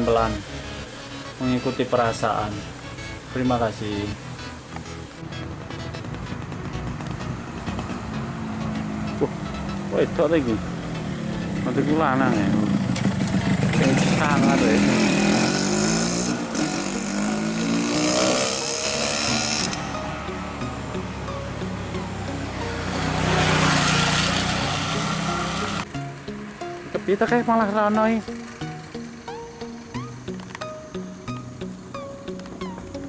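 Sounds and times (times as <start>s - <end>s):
small motorcycle engine passing: 0.0s - 33.0s.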